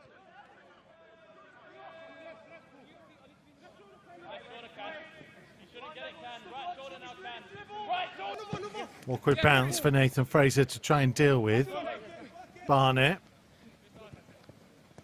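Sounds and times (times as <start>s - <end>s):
faint indistinct voices: 0.0s - 15.0s.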